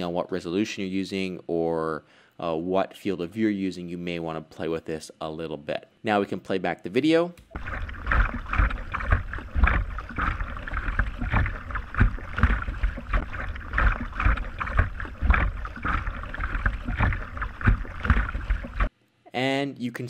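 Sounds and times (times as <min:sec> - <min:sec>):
kayak paddle splashing: 0:07.5 - 0:18.9.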